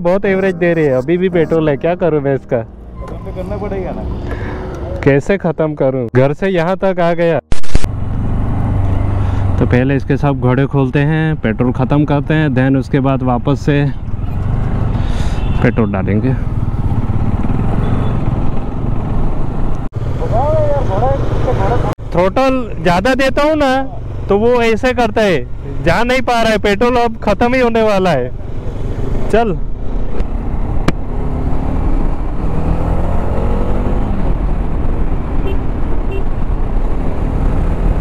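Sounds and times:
person speaking: 0.0s - 5.5s
motor vehicle rumbling: 0.0s - 6.1s, 7.4s - 38.0s.

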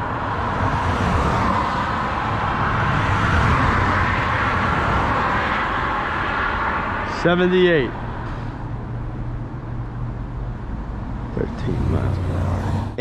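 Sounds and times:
cars passing on road: 0.0s - 13.0s.

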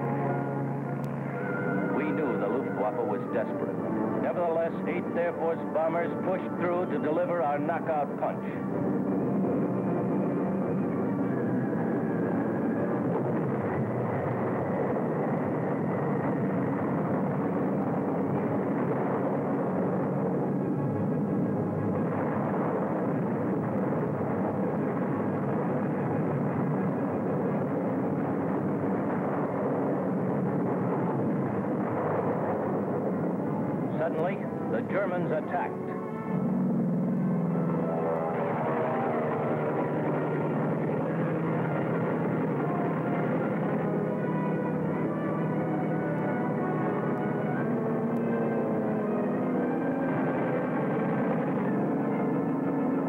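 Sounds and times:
bomber aircraft engines droning: 0.0s - 53.0s.

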